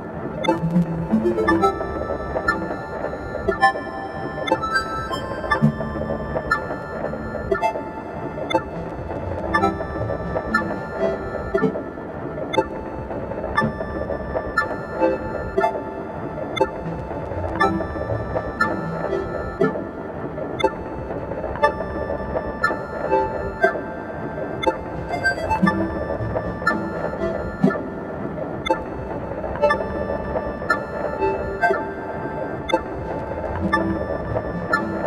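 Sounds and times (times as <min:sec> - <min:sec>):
sustained synthesizer tones: 0:00.0 - 0:35.0.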